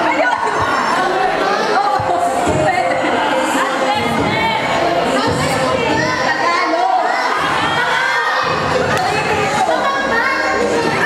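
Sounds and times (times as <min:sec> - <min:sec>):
crowd shouting and cheering: 0:00.0 - 0:11.0.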